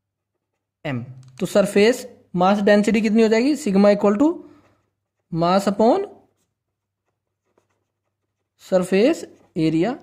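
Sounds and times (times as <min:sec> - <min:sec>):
pen writing on paper: 0:00.1 - 0:00.8, 0:04.4 - 0:09.8.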